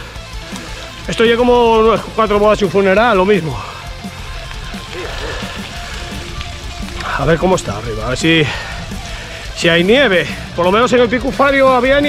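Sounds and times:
bike tyres rumbling on dirt: 0.0s - 12.0s
faint background music: 0.0s - 12.0s.

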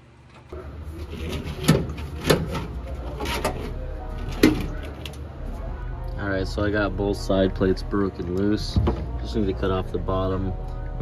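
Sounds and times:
steady low hum: 0.0s - 11.0s
metal knocks and scrapes: 0.9s - 5.2s.

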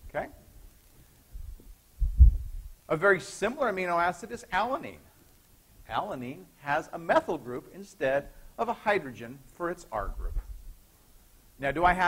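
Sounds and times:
man speaking: 0.1s - 0.4s, 2.9s - 5.1s, 5.9s - 10.5s, 11.6s - 12.0s
low muffled thumps: 1.4s - 2.8s.

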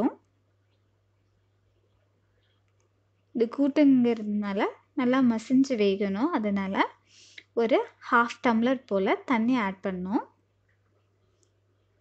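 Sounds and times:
woman speaking: 0.0s - 0.3s, 3.3s - 10.4s.

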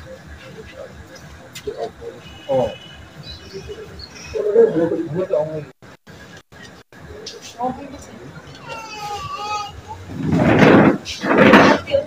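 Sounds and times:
people talking: 0.0s - 10.0s, 10.9s - 12.0s.

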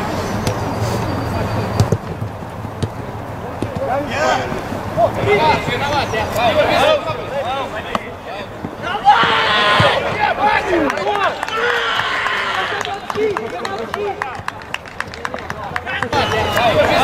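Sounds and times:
ball thump: 1.8s - 3.0s, 3.6s - 4.6s, 7.9s - 10.2s
men shouting: 3.9s - 14.4s, 15.9s - 17.0s.

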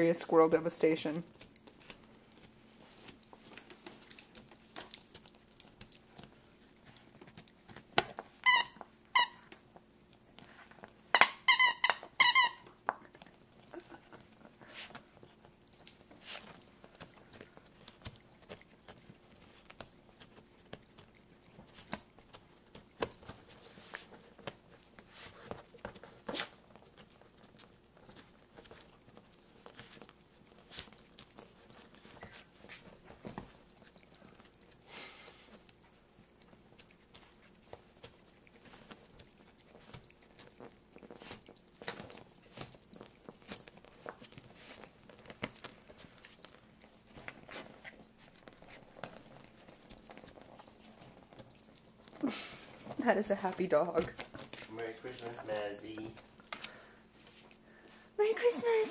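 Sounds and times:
dog chewing toy: 0.0s - 58.0s
squeaky toy squeaking: 8.4s - 9.4s, 11.1s - 12.6s.

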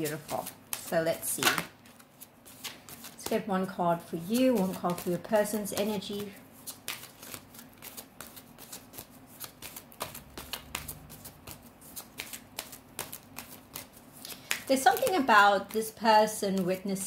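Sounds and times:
cards being shuffled: 0.0s - 16.8s.

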